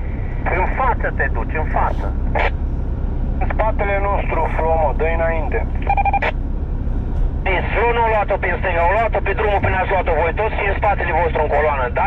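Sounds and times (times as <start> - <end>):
car engine drone inside cabin: 0.0 - 12.0
people talking: 0.4 - 2.5, 3.4 - 6.3, 7.4 - 12.0.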